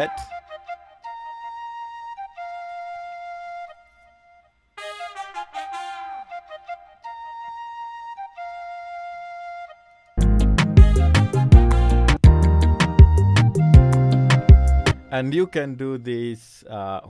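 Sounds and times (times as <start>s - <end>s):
tin whistle and trumpet: 0.0s - 8.3s, 10.8s - 15.7s.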